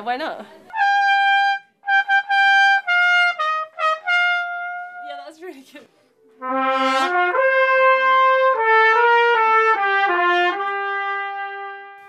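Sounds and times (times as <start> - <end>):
two trumpets playing: 0.7 - 5.4, 6.3 - 12.0.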